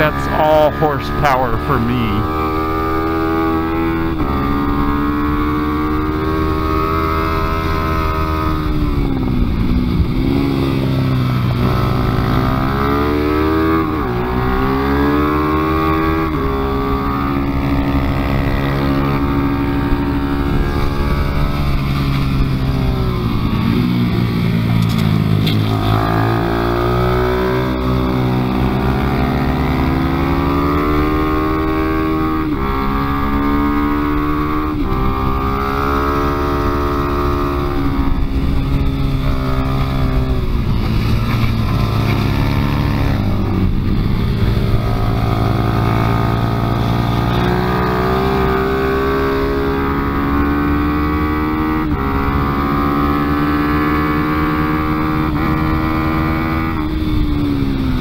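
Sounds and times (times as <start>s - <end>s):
motorcycle engine revving: 0.0s - 58.0s
wind rushing over microphone: 2.2s - 58.0s.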